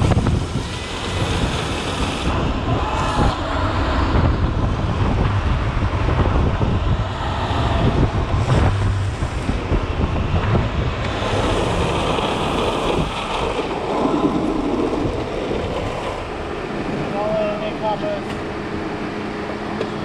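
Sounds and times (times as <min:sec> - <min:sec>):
wind buffeting microphone: 0:00.0 - 0:19.6
skateboard wheels rolling on asphalt: 0:00.0 - 0:20.0.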